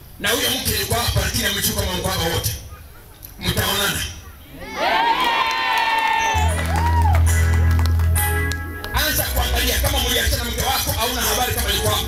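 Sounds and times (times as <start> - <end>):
crowd cheering: 4.5 - 8.3.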